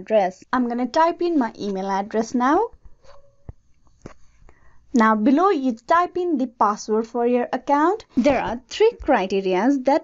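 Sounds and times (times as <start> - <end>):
soft breathing: 4.0 - 4.9.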